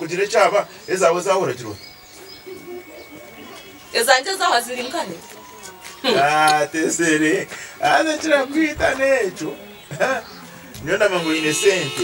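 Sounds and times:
faint low bird calls: 0:00.6 - 0:06.4.

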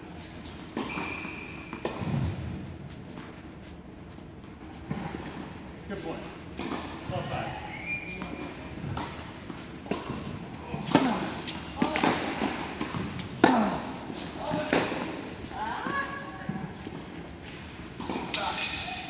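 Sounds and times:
tennis balls bouncing on court: 0:00.8 - 0:02.6, 0:08.2 - 0:18.7
tennis balls struck by rackets: 0:01.7 - 0:03.0, 0:08.9 - 0:18.9.

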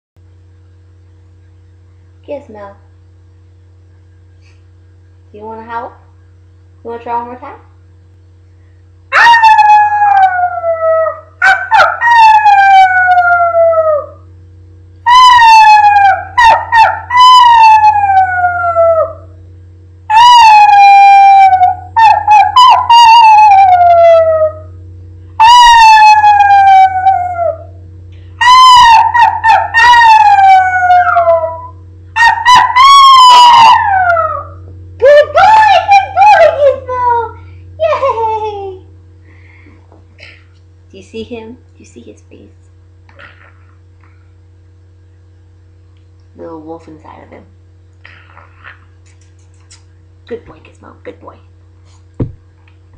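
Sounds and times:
small dog howling: 0:09.1 - 0:14.3, 0:15.1 - 0:19.4, 0:20.1 - 0:24.8, 0:25.4 - 0:27.8, 0:28.4 - 0:38.8
woman howling: 0:20.1 - 0:24.8, 0:25.4 - 0:27.8, 0:28.4 - 0:38.9.

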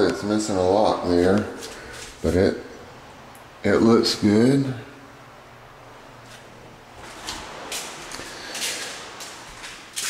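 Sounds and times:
faint footsteps: 0:06.2 - 0:10.0.

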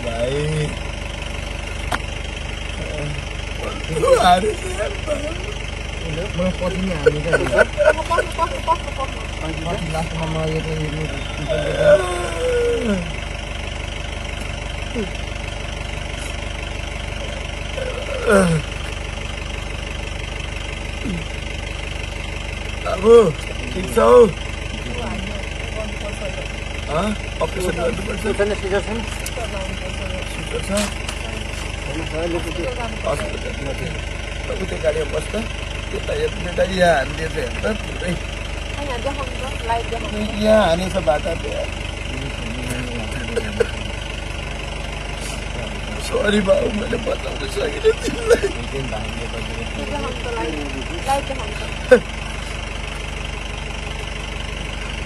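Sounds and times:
people talking: 0:00.0 - 0:00.8, 0:02.7 - 0:13.2, 0:14.9 - 0:15.2, 0:17.8 - 0:18.7, 0:21.0 - 0:21.3, 0:22.8 - 0:38.2, 0:38.8 - 0:44.0, 0:45.2 - 0:52.1.

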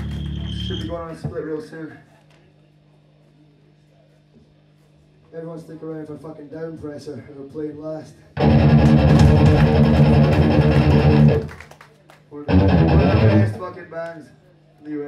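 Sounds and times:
distorted guitars and bass chord: 0:08.4 - 0:11.5, 0:12.5 - 0:13.8.

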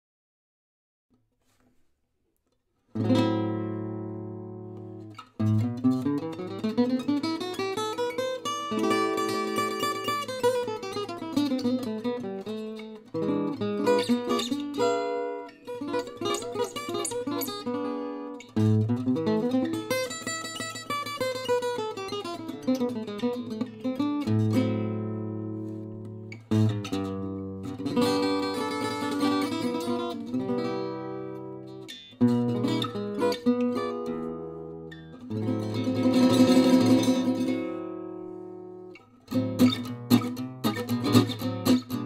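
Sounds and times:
acoustic guitar playing: 0:02.9 - 0:42.0.

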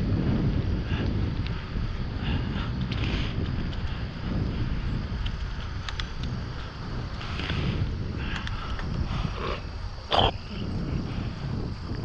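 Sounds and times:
bicycle tyre rumble on pavement: 0:00.0 - 0:12.0
wind buffeting microphone: 0:00.0 - 0:12.0.

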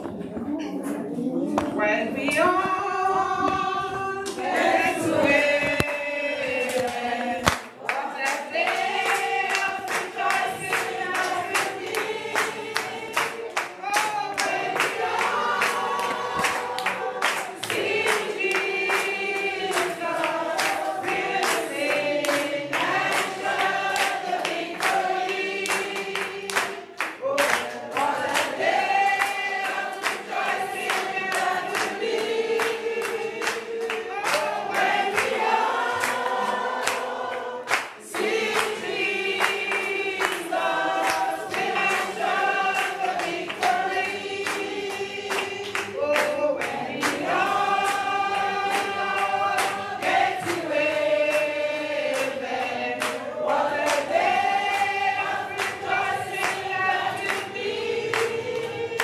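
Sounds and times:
congregation singing gospel: 0:00.0 - 0:59.0
hand-clapping: 0:04.2 - 0:59.0.

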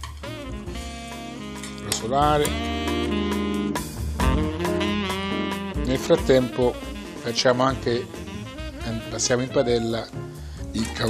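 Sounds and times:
jazz music: 0:00.0 - 0:11.0.

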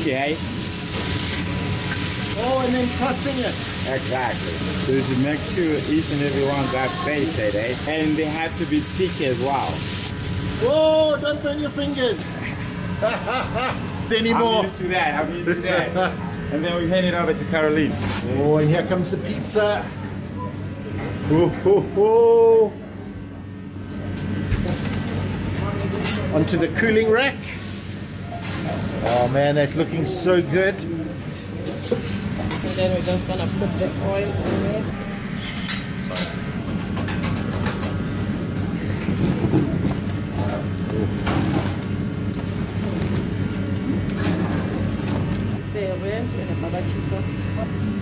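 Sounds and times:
kitchen hum: 0:00.0 - 0:48.0
muffled voices: 0:14.0 - 0:41.6.

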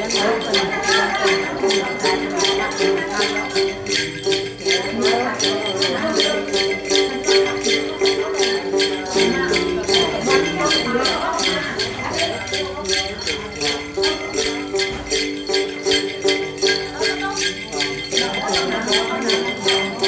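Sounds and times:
jingle bells shaken: 0:00.0 - 0:20.0
plucked lute: 0:00.0 - 0:20.0.

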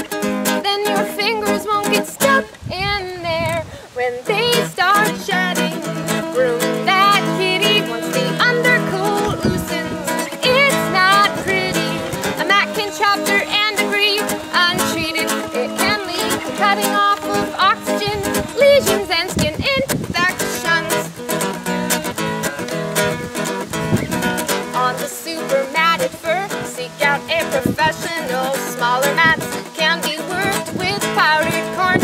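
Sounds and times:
two women singing: 0:00.0 - 0:21.7, 0:23.6 - 0:32.0
ukulele strumming: 0:00.0 - 0:32.0.

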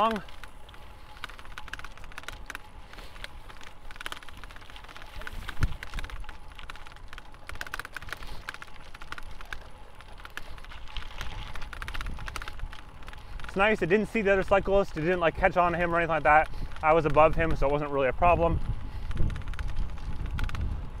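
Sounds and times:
bicycle rattling over dirt path: 0:00.0 - 0:21.0.

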